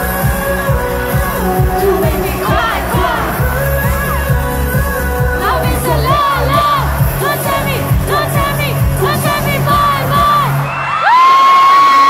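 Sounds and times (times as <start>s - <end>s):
concert music: 0.0s - 12.0s
crowd cheering and screaming: 5.4s - 12.0s.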